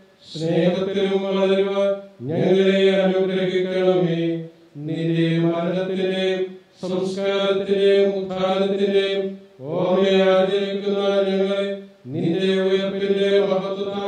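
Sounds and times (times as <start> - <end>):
man chanting prayer: 0.0 - 14.0.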